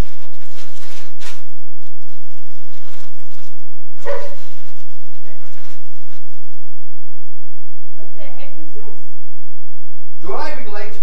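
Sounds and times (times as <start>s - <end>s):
dog barking: 4.0s - 4.6s.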